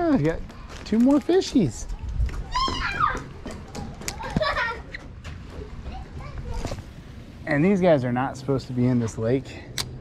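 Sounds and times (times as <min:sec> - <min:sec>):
small child calling out: 0:02.5 - 0:03.3.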